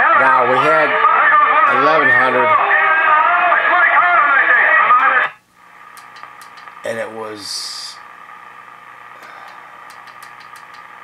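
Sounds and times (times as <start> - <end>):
radio speech through speaker: 0.0 - 8.1
faint steady hum: 0.0 - 11.0
light clicks: 6.0 - 6.7, 9.4 - 10.9.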